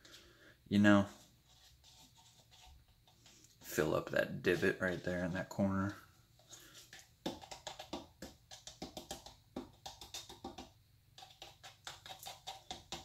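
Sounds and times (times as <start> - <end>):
plastic cup tapping and clicking: 6.9 - 13.0.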